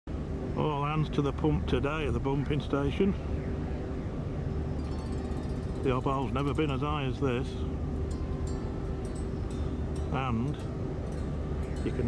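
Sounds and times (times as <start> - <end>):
diesel pumps droning: 0.1 - 12.0.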